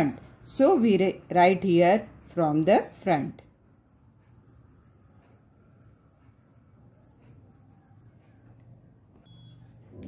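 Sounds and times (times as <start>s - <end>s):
pen scratching on paper: 3.4s - 8.6s.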